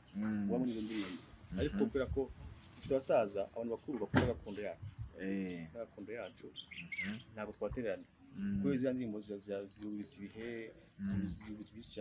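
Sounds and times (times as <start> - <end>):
man talking: 0.2 - 6.6, 7.2 - 12.0
bird chirping: 5.4 - 8.4, 10.0 - 12.0.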